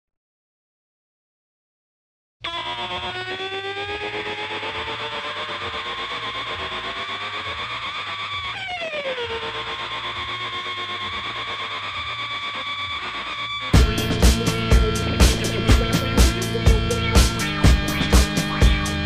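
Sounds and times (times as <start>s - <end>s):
sliding synthesizer tones: 2.4s - 19.0s
downward pitch sweep: 2.5s - 19.0s
pulsing low note: 12.1s - 19.0s.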